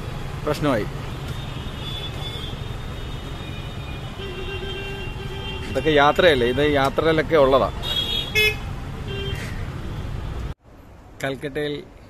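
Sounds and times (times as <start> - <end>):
rumble of traffic engines: 0.0 - 12.0.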